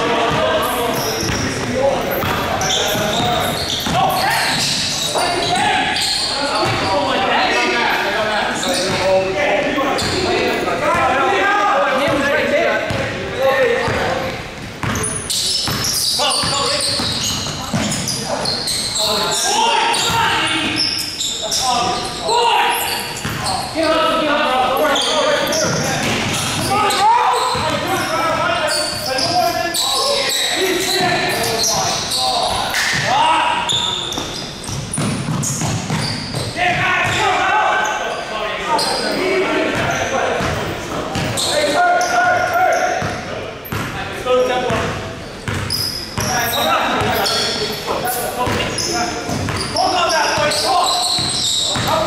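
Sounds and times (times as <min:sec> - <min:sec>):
players shouting in hall: 0:26.6 - 0:28.5
basketball bouncing on wooden floor: 0:34.7 - 0:37.2, 0:45.4 - 0:46.3.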